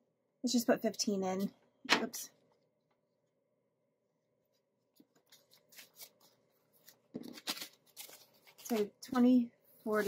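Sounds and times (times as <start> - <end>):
paper banknotes rustling: 5.0 - 9.3.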